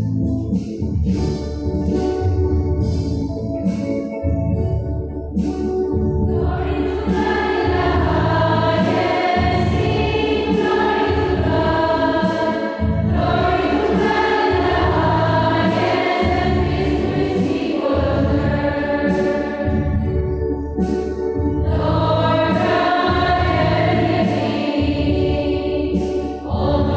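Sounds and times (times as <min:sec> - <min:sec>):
choir singing a hymn: 0:06.3 - 0:20.2, 0:21.6 - 0:26.9.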